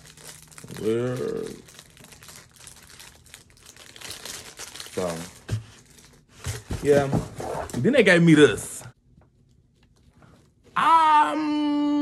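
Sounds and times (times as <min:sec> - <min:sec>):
packaging crinkling and rustling: 0:00.0 - 0:07.1.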